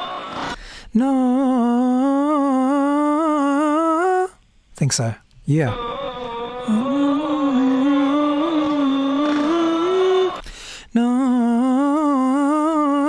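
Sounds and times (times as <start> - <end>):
man singing held wavering notes: 5.6 - 13.0.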